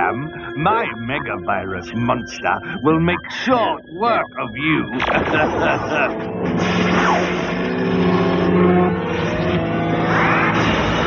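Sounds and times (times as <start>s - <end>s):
synthesized sci-fi sound effects: 0.0s - 10.8s
electronic drone with rising tone: 5.0s - 11.0s.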